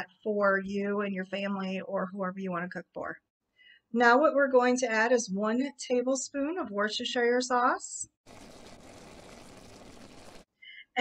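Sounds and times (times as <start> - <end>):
beef sizzling in a pan: 8.3 - 10.5.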